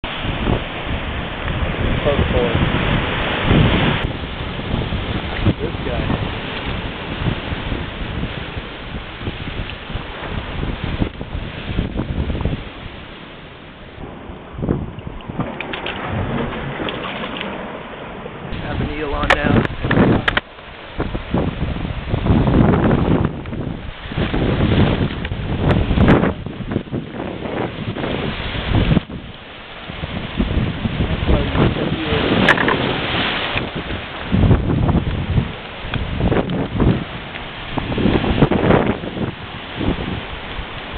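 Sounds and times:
surf washing over rocks: 0.0s - 40.9s
wind buffeting microphone: 0.0s - 40.9s.

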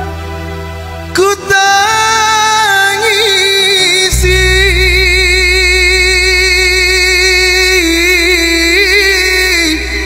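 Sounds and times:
low musical backing: 0.0s - 10.0s
man singing held note: 4.1s - 10.0s.

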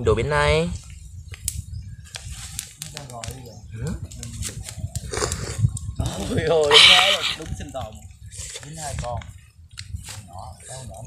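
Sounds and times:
mouth and chewing sounds: 4.6s - 8.6s.

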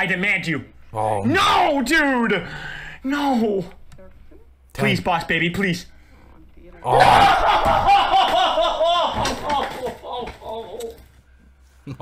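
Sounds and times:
man's voice: 0.0s - 3.8s.

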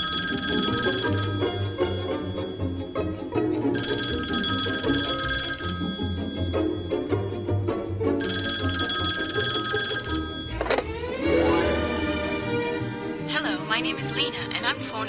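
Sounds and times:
telephone ringing: 0.0s - 10.9s.

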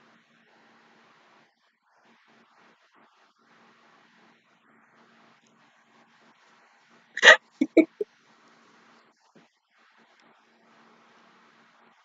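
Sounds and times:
woman laughing: 7.2s - 8.0s.

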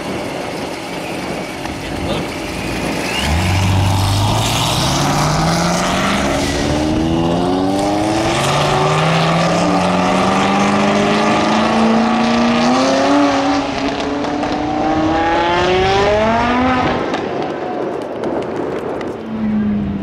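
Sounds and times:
car engines accelerating: 0.0s - 17.7s.

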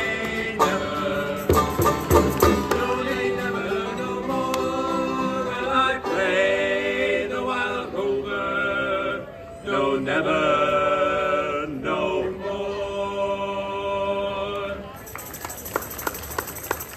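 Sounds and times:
acoustic folk band playing: 0.0s - 7.8s
group singing: 0.0s - 14.8s.

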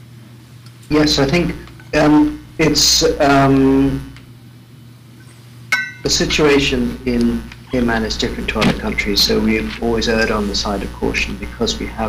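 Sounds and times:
short ringing clink: 5.7s - 6.1s.

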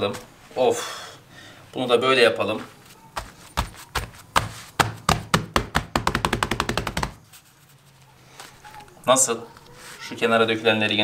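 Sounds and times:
hands patting dough on stone: 2.6s - 7.3s.

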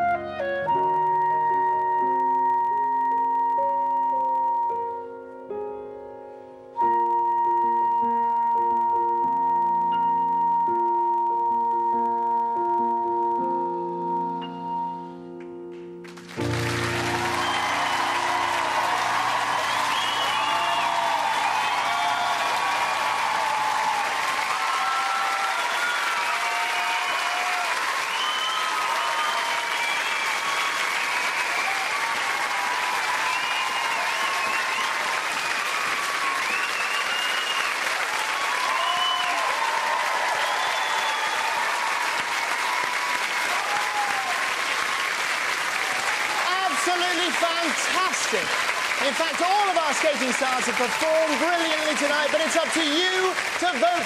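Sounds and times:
audience applause and cheering: 16.0s - 54.0s.

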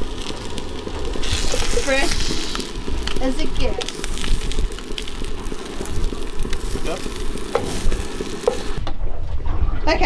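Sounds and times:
fish sizzling in frying pan: 0.0s - 8.8s.

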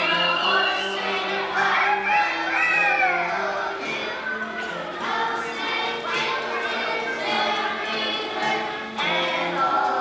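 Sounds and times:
children's choir singing: 0.0s - 10.0s.

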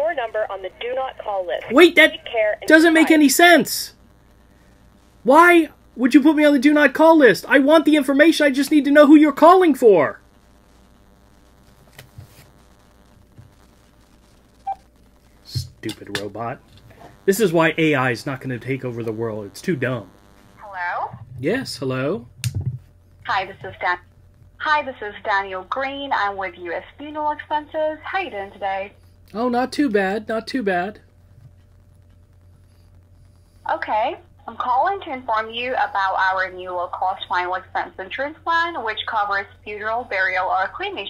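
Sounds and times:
faint line hiss: 0.0s - 33.8s
electronic telephone beep: 14.6s - 14.8s.

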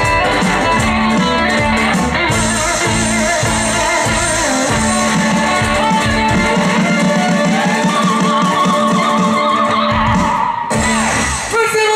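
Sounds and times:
ukulele band playing: 0.0s - 11.6s.

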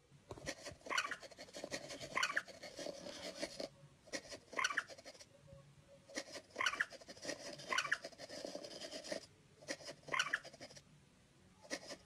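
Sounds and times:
game mouse squeak: 0.8s - 3.4s, 4.2s - 5.2s, 6.1s - 8.2s, 9.7s - 10.8s.

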